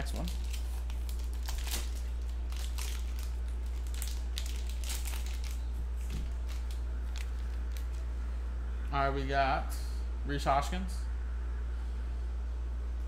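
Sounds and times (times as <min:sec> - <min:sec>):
plastic wrapping crinkling: 0:00.0 - 0:08.1
steady low hum: 0:00.0 - 0:13.0.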